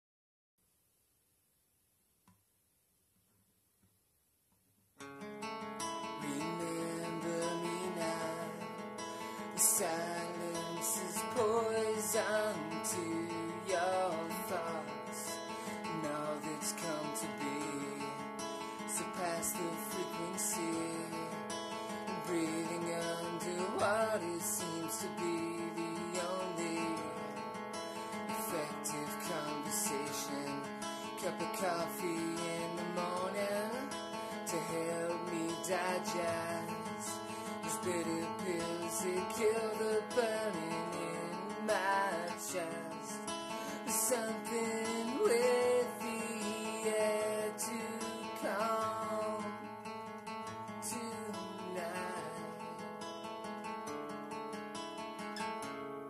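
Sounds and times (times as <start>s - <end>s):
acoustic guitar strummed and picked: 5.0s - 56.0s.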